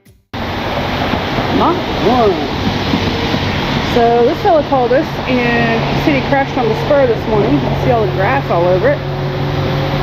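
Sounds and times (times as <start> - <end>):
wind rushing on microphone: 0.4 - 10.0.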